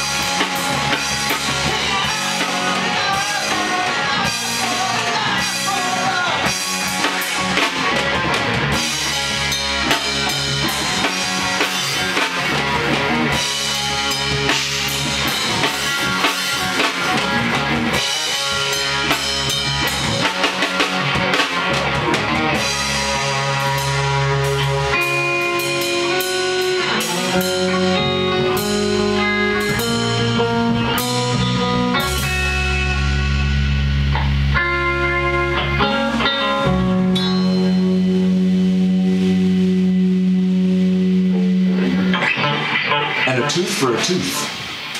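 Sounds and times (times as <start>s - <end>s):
drum kit: 0.0s - 44.9s
electric guitars: 0.0s - 44.9s.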